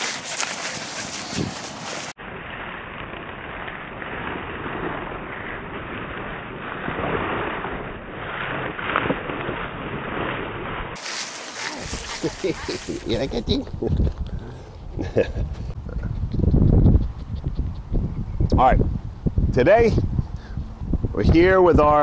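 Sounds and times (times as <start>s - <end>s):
wind noise on microphone: 0.5s - 2.8s, 11.7s - 22.0s.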